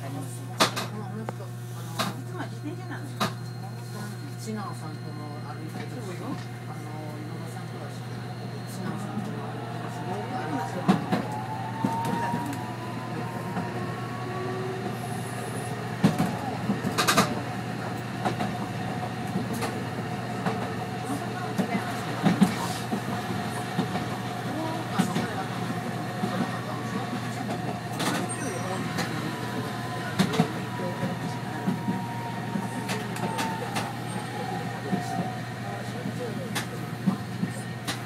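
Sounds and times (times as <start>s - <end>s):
tram hum: 0.0s - 38.0s.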